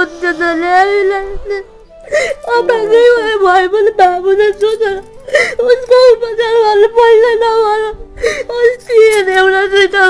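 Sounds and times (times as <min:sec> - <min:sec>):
woman crying and wailing: 0:00.0 - 0:10.0
gasping sobbing breaths: 0:02.0 - 0:02.5, 0:05.1 - 0:05.7, 0:08.1 - 0:08.5.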